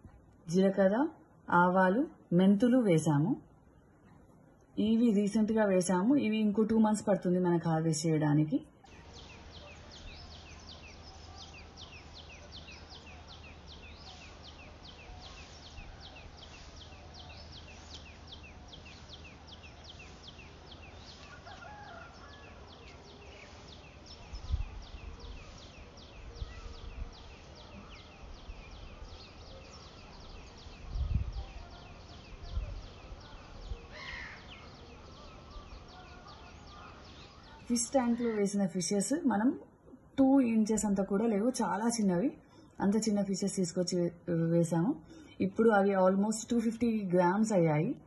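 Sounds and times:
low rumbles on microphone: 0:23.7 - 0:34.0.

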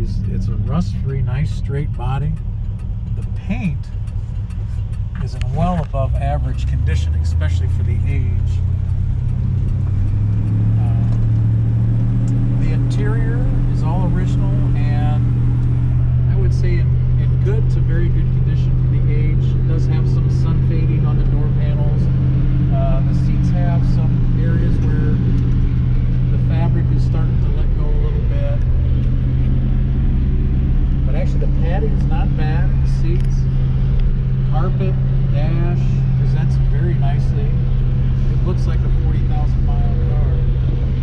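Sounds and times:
car engine hum from cabin: 0:00.0 - 0:41.0.

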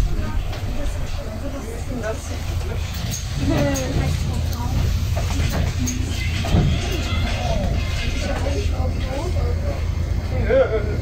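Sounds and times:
bus engine rumble: 0:00.0 - 0:11.0
passenger chatter: 0:00.0 - 0:11.0.

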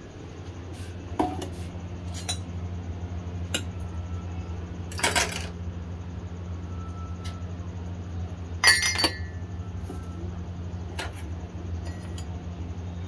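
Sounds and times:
steady low hum: 0:00.0 - 0:13.0
ceramic mugs clinking: 0:08.6 - 0:09.4.

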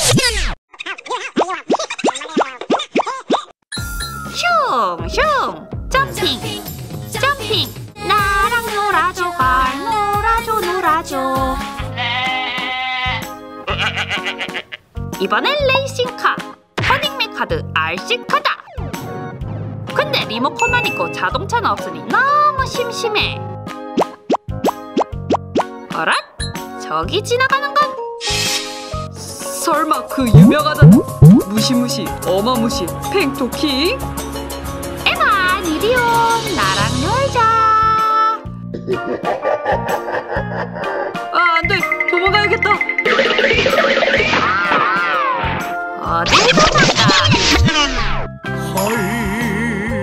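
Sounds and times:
background music: 0:03.8 - 0:46.8, 0:47.4 - 0:50.0
electronic jingle: 0:30.4 - 0:31.5, 0:41.8 - 0:44.2
rising bloop sound effects: 0:30.4 - 0:31.5, 0:42.0 - 0:44.5.

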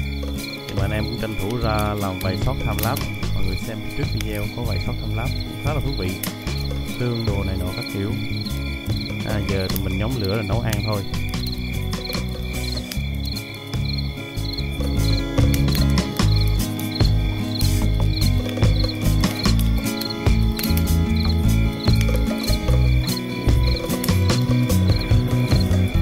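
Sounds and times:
crickets chirping: 0:00.0 - 0:26.0
music with heavy bass: 0:00.0 - 0:26.0.

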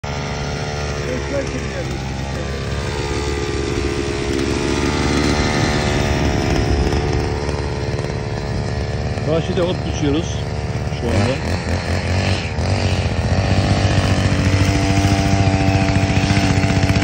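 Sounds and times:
brush cutter engine running: 0:00.0 - 0:17.0.

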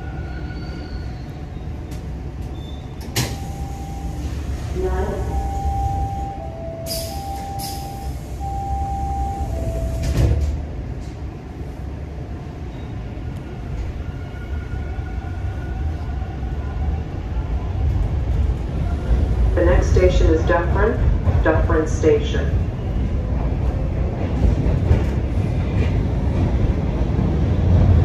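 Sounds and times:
train rumbling: 0:00.0 - 0:28.0
train doors closing thump: 0:03.0 - 0:03.6, 0:09.4 - 0:11.2
two-tone door chime: 0:05.3 - 0:10.4.

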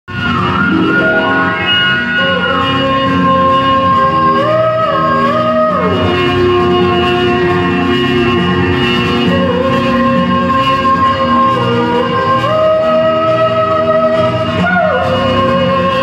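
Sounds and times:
sustained chords: 0:00.1 - 0:12.3
sliding lead melody: 0:00.1 - 0:16.0.

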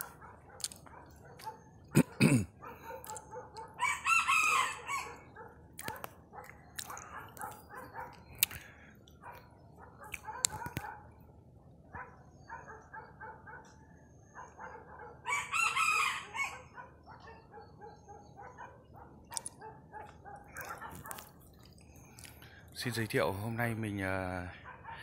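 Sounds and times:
soft rooster calls: 0:03.8 - 0:05.2, 0:15.2 - 0:16.7
rooster crowing: 0:03.8 - 0:05.3, 0:15.2 - 0:16.8.

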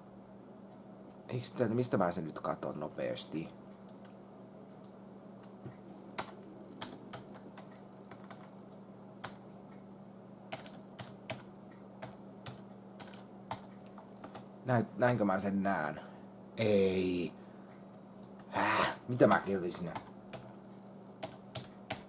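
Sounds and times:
steady low hum: 0:00.0 - 0:22.0
man talking: 0:01.3 - 0:03.6, 0:14.6 - 0:17.4, 0:18.5 - 0:20.0
computer keys clicking: 0:03.8 - 0:04.2, 0:04.8 - 0:08.6, 0:09.2 - 0:09.5, 0:10.5 - 0:14.5, 0:18.2 - 0:18.5, 0:19.2 - 0:20.6, 0:21.2 - 0:22.0.

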